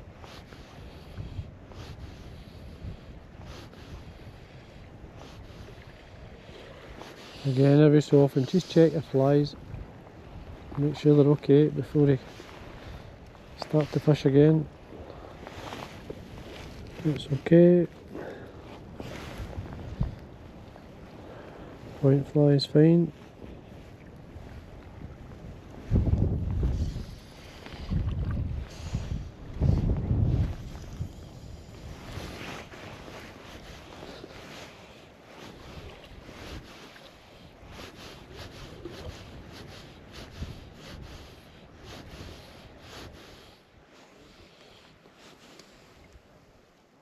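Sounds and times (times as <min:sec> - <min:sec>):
wind gusting over microphone: 0:00.0 - 0:43.5
small waves lapping: 0:00.0 - 0:47.0.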